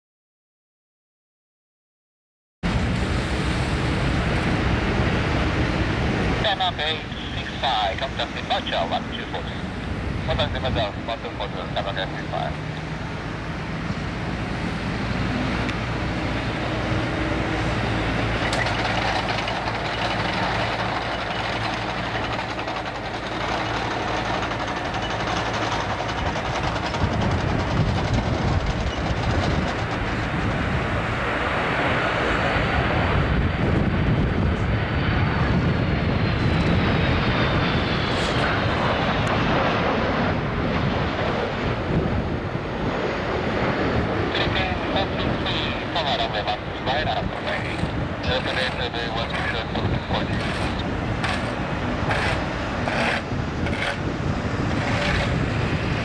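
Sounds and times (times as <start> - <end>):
jet engines rumbling: 2.6 - 56.0.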